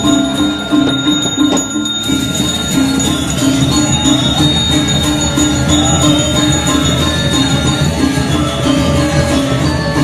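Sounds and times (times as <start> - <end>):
brass handbell ringing: 0.0 - 10.0.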